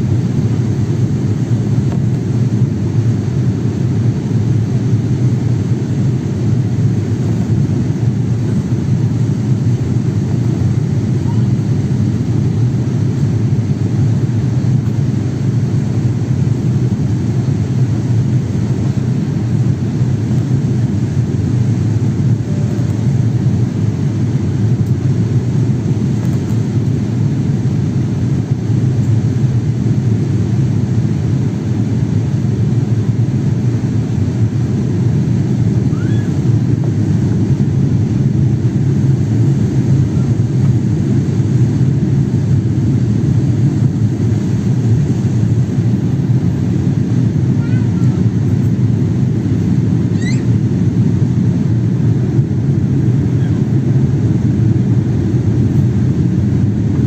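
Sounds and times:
jet airliner cabin rumble: 0.0 - 57.0.

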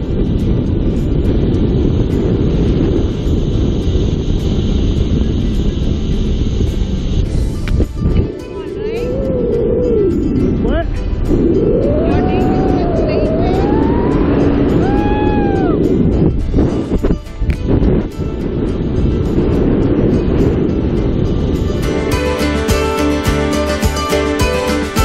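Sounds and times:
wind buffeting microphone: 0.0 - 25.0
background music: 7.3 - 18.6, 21.3 - 25.0.

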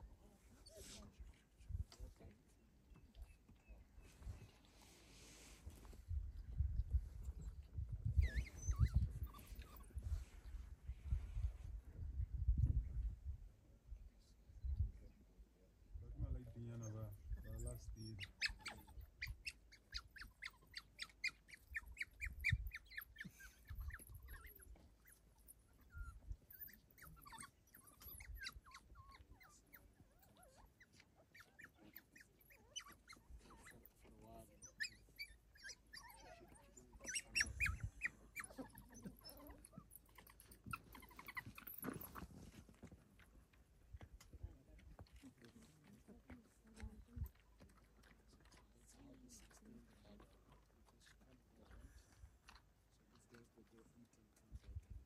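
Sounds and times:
wild dog pups squeaking: 7.1 - 10.2, 16.8 - 42.8.

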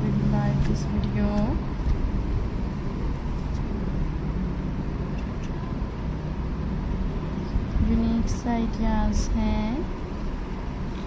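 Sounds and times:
low-pitched background noise: 0.0 - 11.0.

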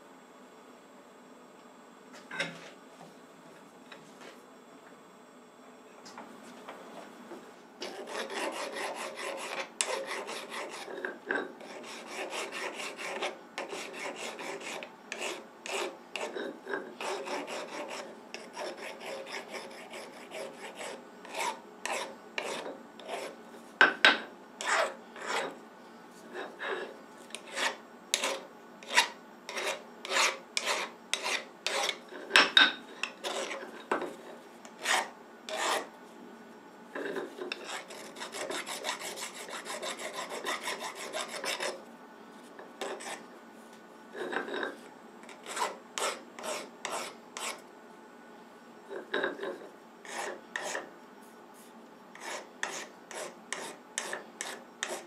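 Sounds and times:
file rasping on metal: 7.8 - 23.4, 24.6 - 25.6, 26.3 - 32.4, 33.0 - 33.7, 34.7 - 35.9, 37.0 - 41.8, 42.8 - 43.2, 45.3 - 47.6, 49.2 - 50.9, 52.2 - 55.0.

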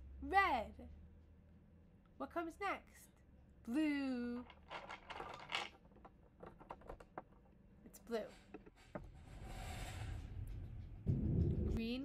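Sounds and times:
plastic pieces clicking and rattling: 4.3 - 7.5.

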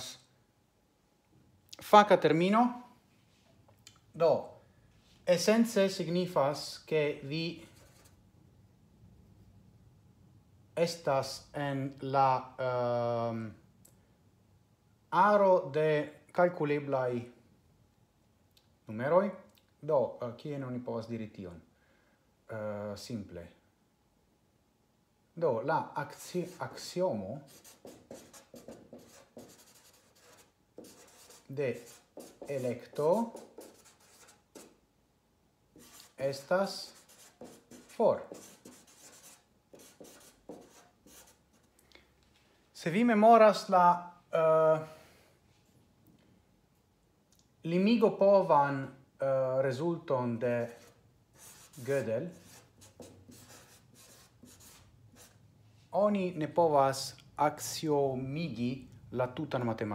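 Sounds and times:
marker scratching on paper: 7.6 - 8.2, 26.1 - 34.8, 35.8 - 41.7, 50.6 - 55.4.

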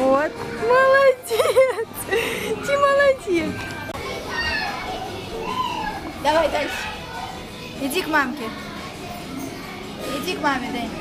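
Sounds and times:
background hubbub: 0.0 - 11.0
young children calling and chattering: 0.0 - 11.0.

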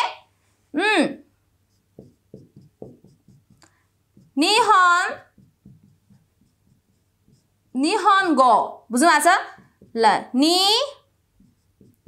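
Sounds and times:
marker writing on whiteboard: 1.5 - 12.0.

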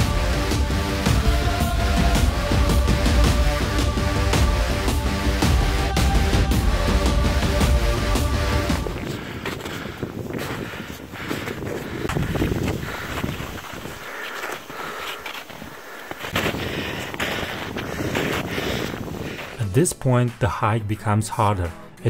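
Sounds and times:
background music: 0.0 - 9.2, 19.5 - 22.0
background voices: 0.0 - 9.5
wind buffeting microphone: 8.8 - 19.6.

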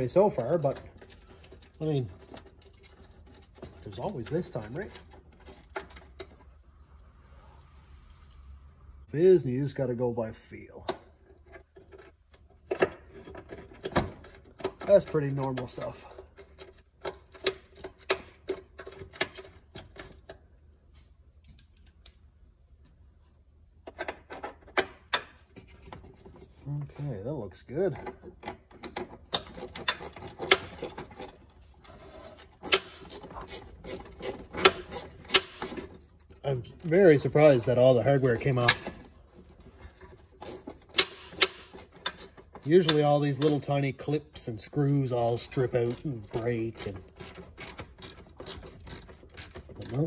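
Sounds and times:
hand tool clicking on screws: 28.8 - 31.4, 32.5 - 36.2, 40.0 - 43.7, 45.3 - 50.0.

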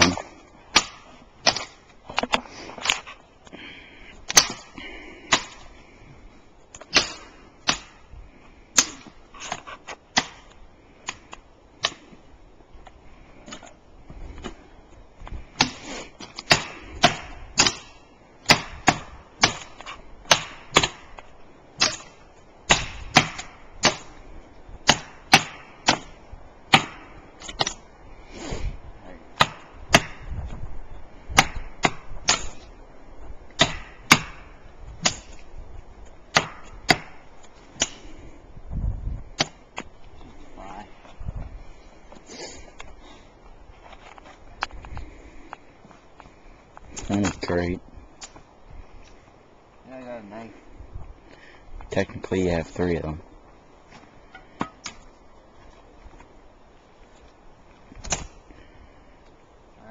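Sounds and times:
tool chopping a tree: 0.0 - 3.0, 4.3 - 4.7, 6.8 - 8.0, 8.7 - 12.1, 15.6 - 21.2, 21.8 - 24.2, 24.8 - 27.8, 29.4 - 30.3, 31.3 - 32.6, 33.5 - 35.4, 36.3 - 38.0, 39.4 - 39.6, 58.0 - 58.3.

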